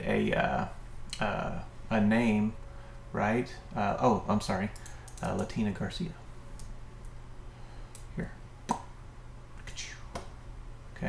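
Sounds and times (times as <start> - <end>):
low electrical hum: 0.0 - 11.0
computer mouse clicks: 4.8 - 5.5.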